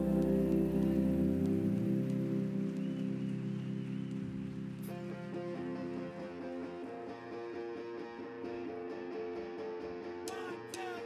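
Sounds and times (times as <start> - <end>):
live band sustained chord: 0.0 - 7.3.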